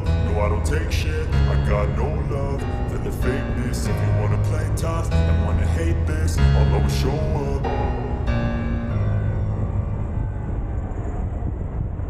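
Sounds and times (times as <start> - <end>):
wind rush on microphone: 0.0 - 12.0.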